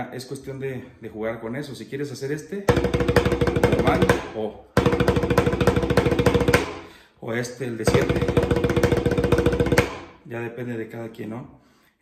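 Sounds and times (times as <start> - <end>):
snare drum roll with sticks: 2.7 - 6.8, 7.9 - 10.1.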